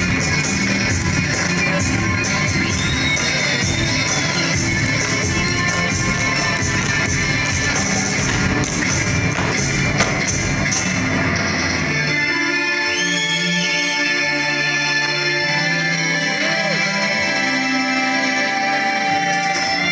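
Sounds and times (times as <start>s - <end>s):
guitar: 0.0s - 19.9s
saxophone: 0.0s - 19.9s
dance shoes tapping on stage: 3.8s - 10.8s.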